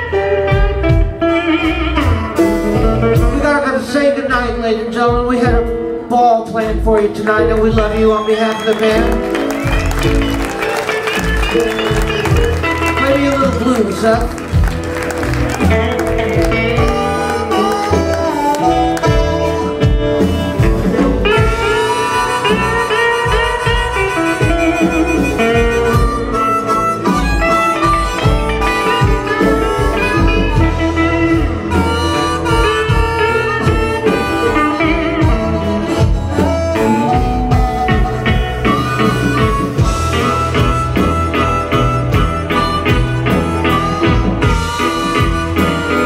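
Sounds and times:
electric blues band playing: 0.0 - 46.0.

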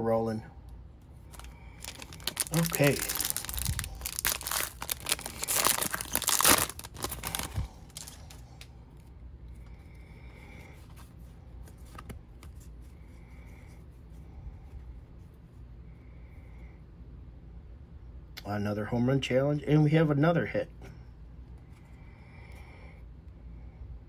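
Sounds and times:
foil wrapper tearing and crinkling: 1.3 - 8.6
cards rustling: 1.3 - 9.1, 10.8 - 13.1.

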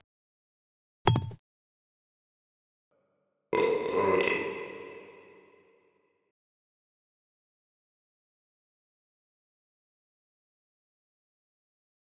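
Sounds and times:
loud echoing belch: 3.5 - 6.0.

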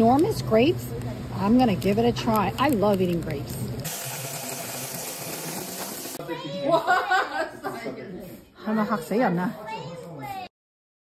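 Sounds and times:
laughter: 6.5 - 8.3.

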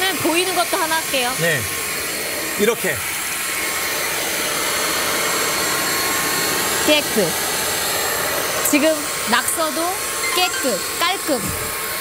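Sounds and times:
stick vacuum whirring: 0.0 - 12.0.

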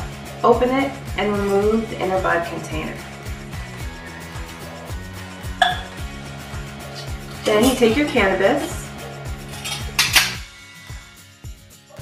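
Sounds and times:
background music with bass line: 0.0 - 12.0
lid clinking on stone countertop: 5.6 - 6.0.

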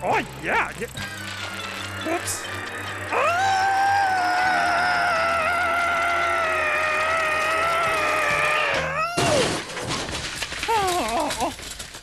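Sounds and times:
crash: 8.7 - 12.0.

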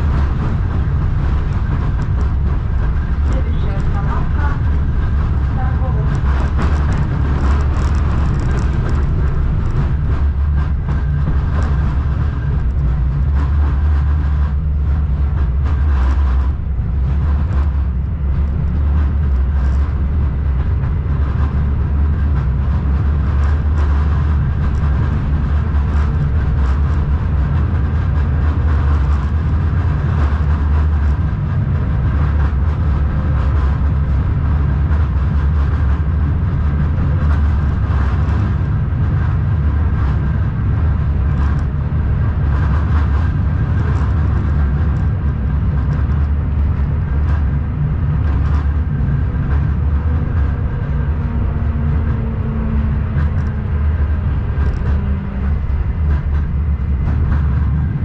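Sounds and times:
tram wheels rumbling on rails: 0.0 - 58.0.

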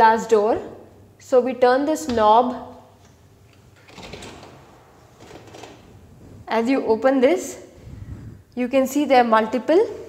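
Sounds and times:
incubator glass door opening: 3.8 - 6.1.

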